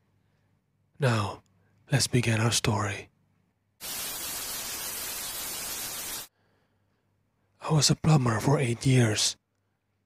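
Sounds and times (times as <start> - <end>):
tv static hiss: 3.8 - 6.3.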